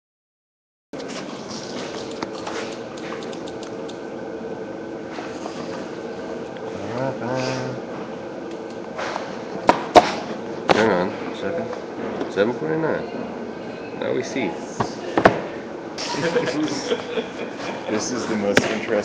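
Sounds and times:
room hubbub with faint voices: 0:05.2 - 0:19.0.

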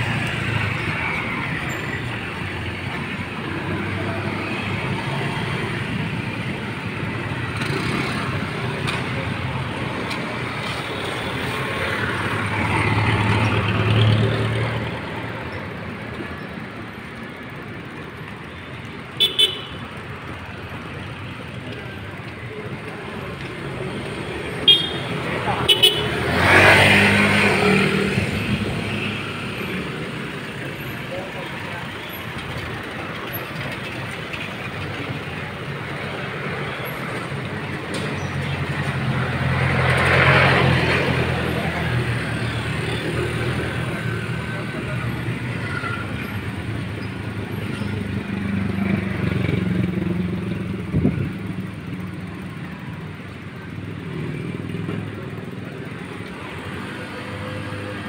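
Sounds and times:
vehicles passing: 0:00.0 - 0:58.0.

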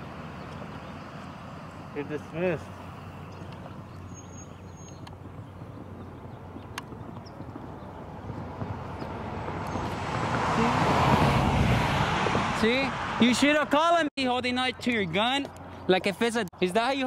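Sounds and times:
road vehicle approaching: 0:00.0 - 0:17.0
steady outdoor background: 0:00.0 - 0:17.0.

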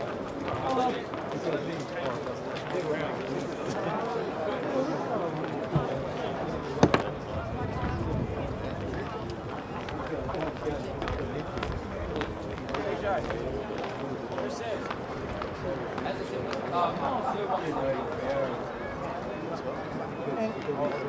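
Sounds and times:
chatter of many voices: 0:00.0 - 0:21.0.

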